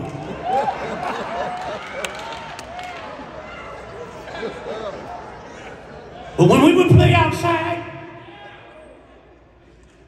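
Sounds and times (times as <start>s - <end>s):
man preaching in echoing hall: 6.4s - 8.2s.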